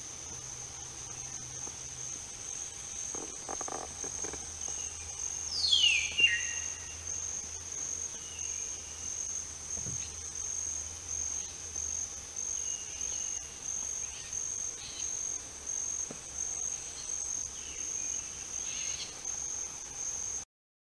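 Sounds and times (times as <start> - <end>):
insect high-pitched trill: 0.0 - 20.4.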